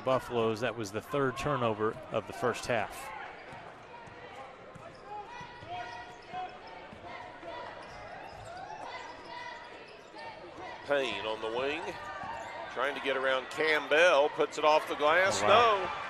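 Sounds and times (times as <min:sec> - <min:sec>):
crowd chatter in arena: 0:00.0 - 0:16.0.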